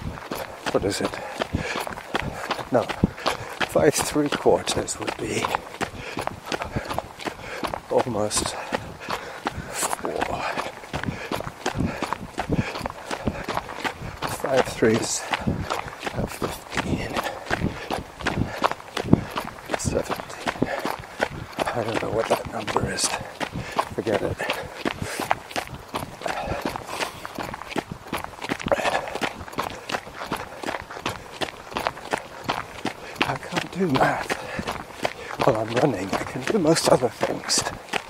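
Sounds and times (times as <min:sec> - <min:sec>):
footsteps of runner on path: 0:00.0 - 0:38.0
man breathing: 0:00.2 - 0:03.7, 0:05.4 - 0:14.3, 0:15.2 - 0:16.1, 0:16.7 - 0:21.8, 0:23.0 - 0:33.3, 0:34.2 - 0:35.4
man muttering: 0:02.4 - 0:03.0, 0:03.7 - 0:05.6, 0:09.6 - 0:11.2, 0:14.3 - 0:15.3, 0:21.6 - 0:23.3, 0:23.9 - 0:25.2, 0:28.7 - 0:29.3, 0:35.4 - 0:37.7.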